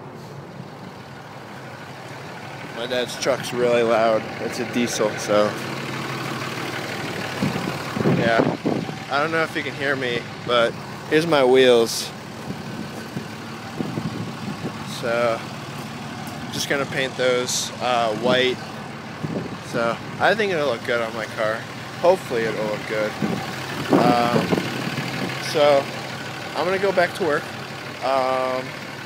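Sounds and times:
diesel truck engine running: 0:00.0 - 0:29.0.

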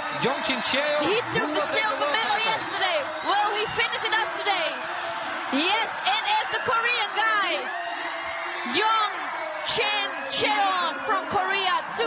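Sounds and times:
crowd noise: 0:00.0 - 0:12.0
excited voices speaking: 0:00.0 - 0:12.0.

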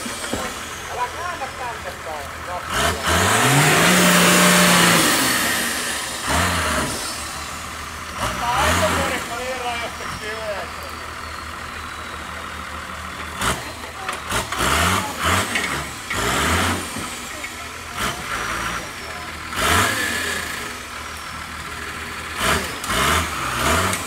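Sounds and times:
off-road engine revving: 0:00.0 - 0:24.0.

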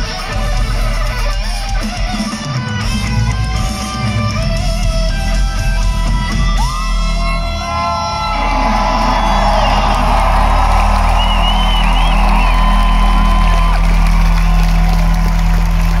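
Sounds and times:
crowd cheering and whooping: 0:06.6 - 0:16.0.

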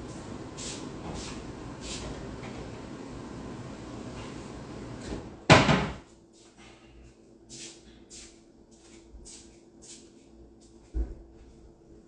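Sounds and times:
cupboard door bang: 0:05.5 - 0:06.0.

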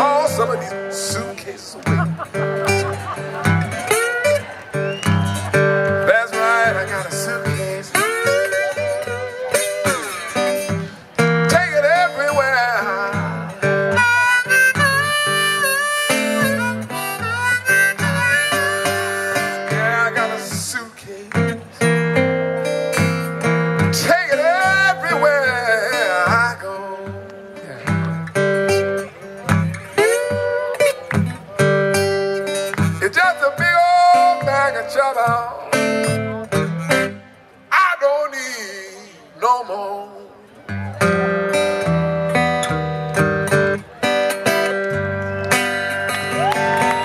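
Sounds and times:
slide resonator guitar blues: 0:00.0 - 0:47.0.

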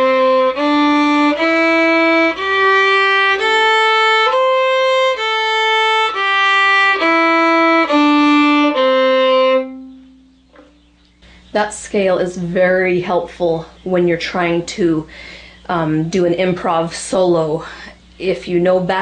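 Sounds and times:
solo fiddle playing a scale: 0:00.0 - 0:10.4.

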